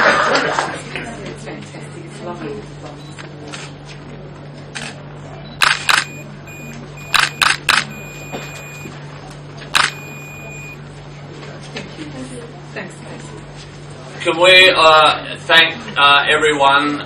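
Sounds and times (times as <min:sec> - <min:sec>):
camera shutter clicks: 0:05.6 - 0:06.2, 0:07.1 - 0:07.9, 0:09.8 - 0:10.0
faint high steady beep: 0:05.9 - 0:08.9, 0:09.8 - 0:10.8.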